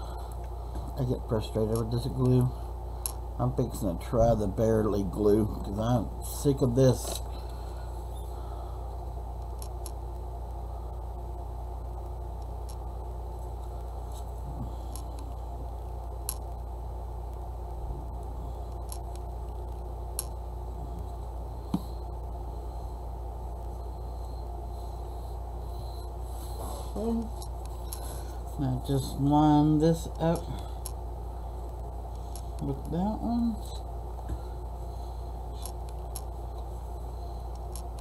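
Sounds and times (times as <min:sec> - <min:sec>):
low background hum: 0:00.0 - 0:38.0.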